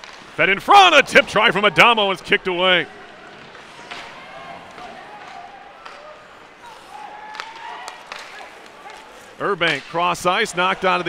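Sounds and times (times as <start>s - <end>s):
crowd noise: 0.0s - 11.0s
hockey sticks and puck clacking: 0.0s - 11.0s.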